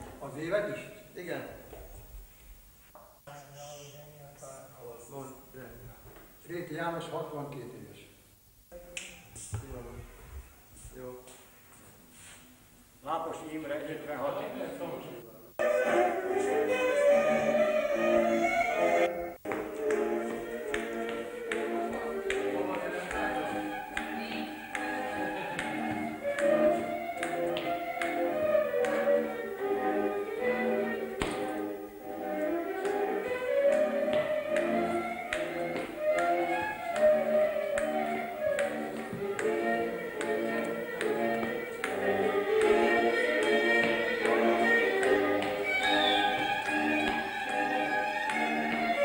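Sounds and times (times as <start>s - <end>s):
folk dance fiddle music: 15.6s - 49.0s
boots stamping on floor: 19.4s - 21.6s.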